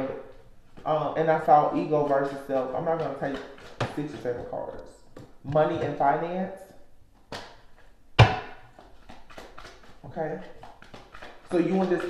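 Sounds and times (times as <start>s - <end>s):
sharp thump: 8.2s - 8.6s.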